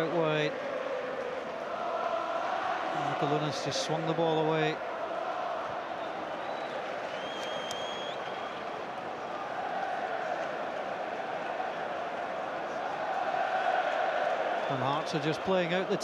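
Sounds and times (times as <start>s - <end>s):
stadium crowd din: 0.0s - 16.0s
high whistle: 6.0s - 8.6s.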